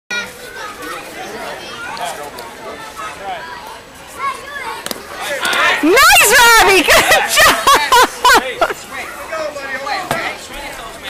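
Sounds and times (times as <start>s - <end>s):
children calling and chattering: 0.1s - 11.0s.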